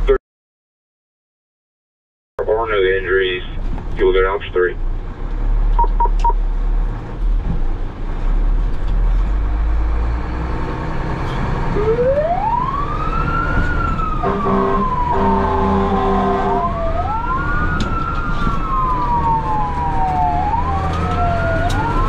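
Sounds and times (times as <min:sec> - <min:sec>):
engine and road noise in rain: 0:02.8 - 0:22.0
ambulance siren wailing: 0:11.6 - 0:22.0
horn blasts: 0:14.2 - 0:16.8.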